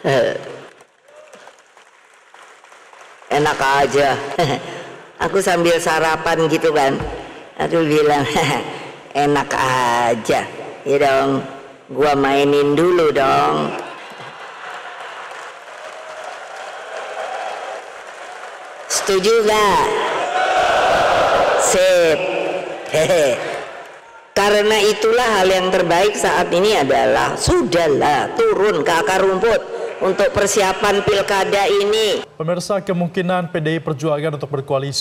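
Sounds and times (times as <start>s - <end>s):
faint audience applause: 0.0s - 3.9s, 13.7s - 24.3s.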